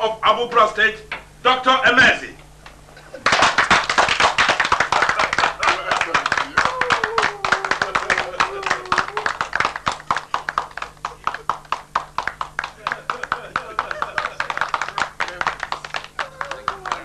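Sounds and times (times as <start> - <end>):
people clapping: 3.2 - 17.0
person speaking: 12.8 - 17.0.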